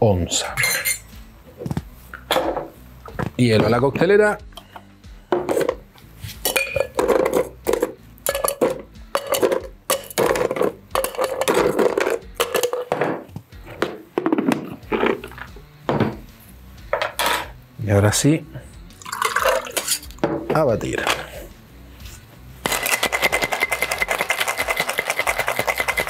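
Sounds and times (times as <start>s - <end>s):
ice cubes clinking in metal shaker: 19.0s - 20.1s, 22.6s - 26.0s.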